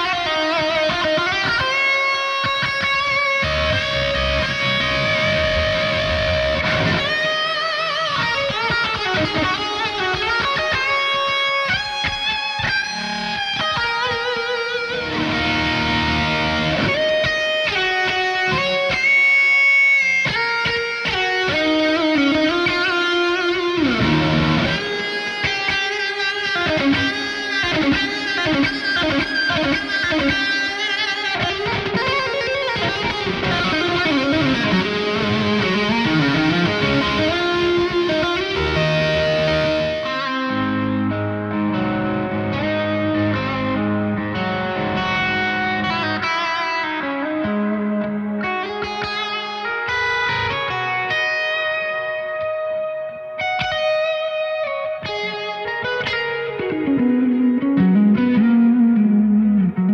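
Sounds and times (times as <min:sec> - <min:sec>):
electric guitar lead with bends: 0:00.0 - 0:59.9.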